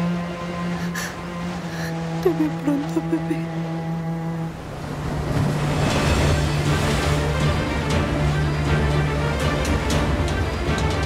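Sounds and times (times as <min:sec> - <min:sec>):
surf breaking on rocks: 0:04.6 - 0:08.6.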